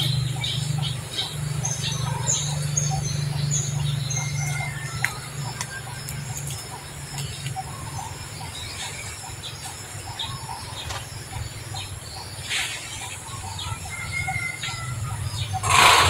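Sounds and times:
small birds chirping: 0:00.0 - 0:16.0
steady low hum: 0:00.0 - 0:16.0
burst of noise: 0:15.6 - 0:16.0.

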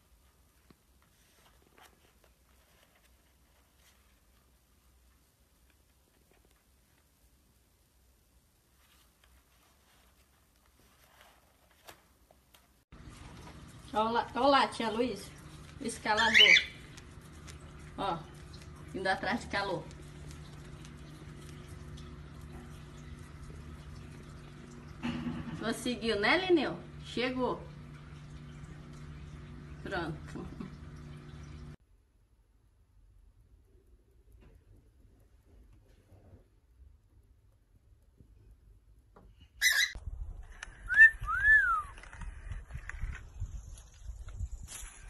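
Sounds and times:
whistled notes: 0:40.8 - 0:42.0.

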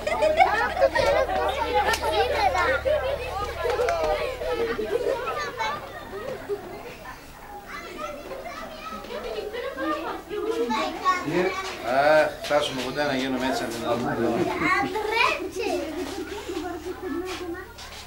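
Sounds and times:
children chattering and calling out: 0:00.0 - 0:18.0.

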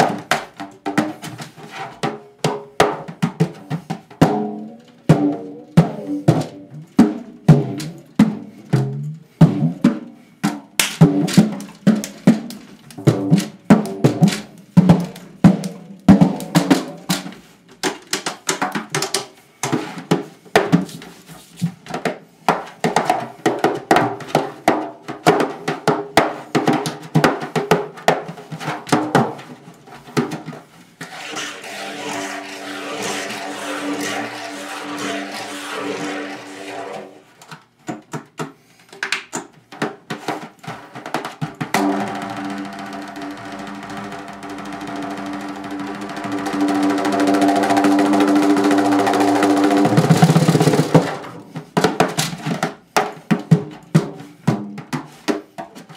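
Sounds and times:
hand drumming: 0:02.5 - 0:17.1, 0:31.6 - 0:36.9, 0:41.6 - 0:51.2.

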